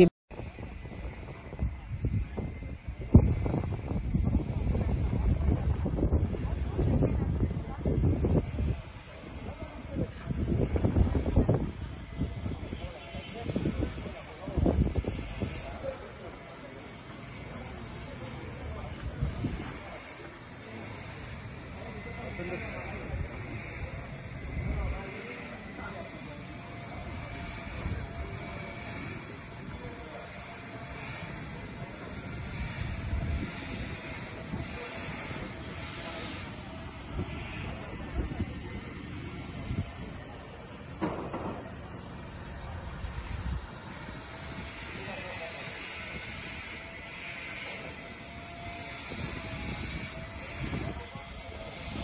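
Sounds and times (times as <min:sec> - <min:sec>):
faint indistinct voices: 0:00.0 - 0:52.0
steady rushing noise: 0:00.0 - 0:52.0
wind buffeting microphone: 0:00.0 - 0:52.0.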